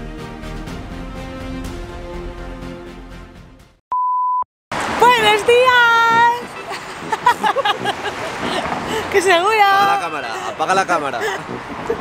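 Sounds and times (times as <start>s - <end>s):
background music: 0.0s - 3.8s, 5.0s - 12.0s
street noise: 4.7s - 12.0s.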